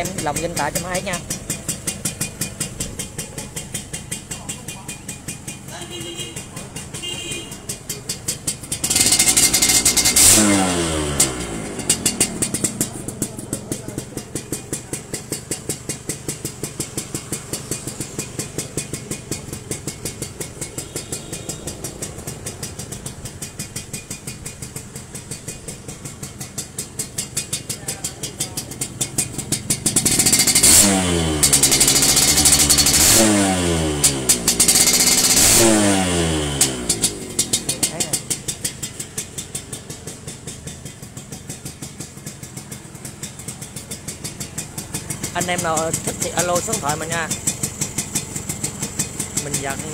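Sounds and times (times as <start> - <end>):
two-stroke engine idling and revving: 0.0 - 49.9.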